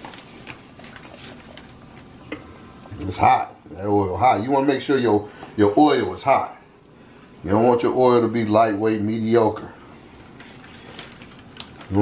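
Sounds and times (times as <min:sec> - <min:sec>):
chicken deep-frying in oil: 0:00.0 - 0:06.6.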